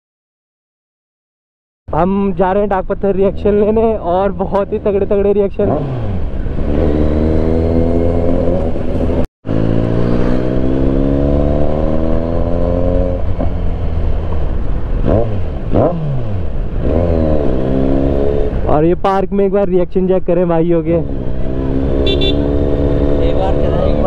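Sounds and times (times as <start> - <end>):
motorcycle engine revving: 3.2 - 18.7, 21.0 - 24.0.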